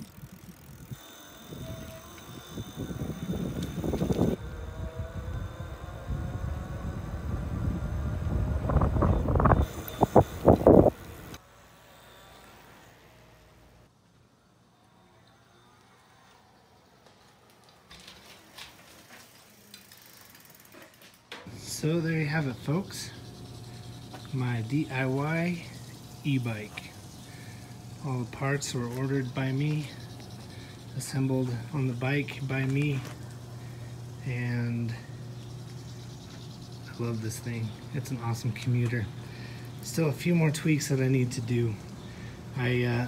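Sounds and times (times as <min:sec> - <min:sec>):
wind buffeting microphone: 0:00.0 - 0:11.3
electric motor whine rising: 0:00.0 - 0:13.9, 0:21.4 - 0:43.0.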